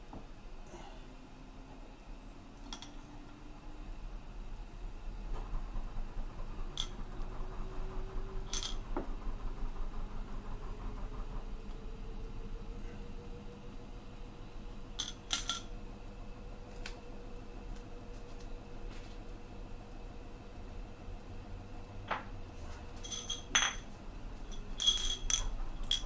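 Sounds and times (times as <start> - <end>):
glass bottles clinking on metal: 23.0 - 23.8, 24.5 - 26.0.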